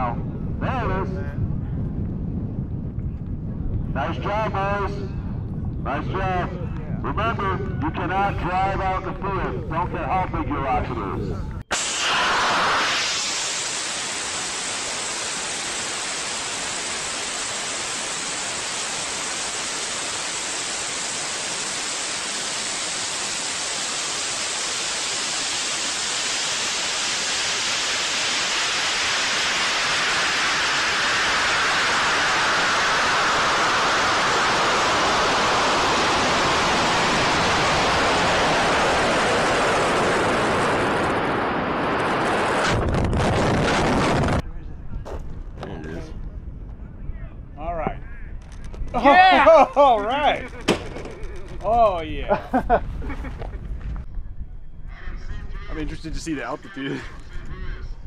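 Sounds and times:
low rumble: 0.0s - 14.4s, 23.4s - 49.0s
rocket exhaust rushing: 11.7s - 44.4s.

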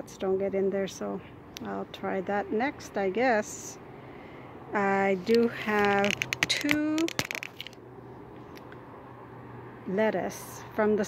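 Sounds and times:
soft clicks and crunches: 5.2s - 7.8s.

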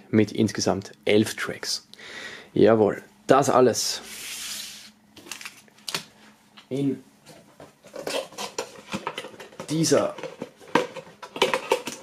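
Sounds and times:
packaged items clattering and rustling: 7.3s - 12.0s.

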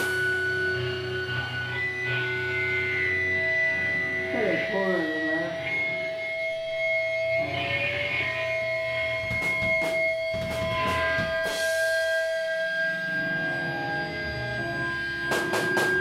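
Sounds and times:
drum and cymbal hits: 0.0s - 0.5s, 9.2s - 12.6s, 15.2s - 16.0s
electric guitars ringing notes: 0.0s - 16.0s.

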